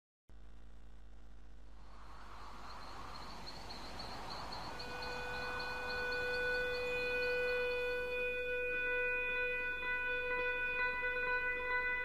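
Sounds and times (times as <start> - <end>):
faint low hum: 0.3 - 11.8.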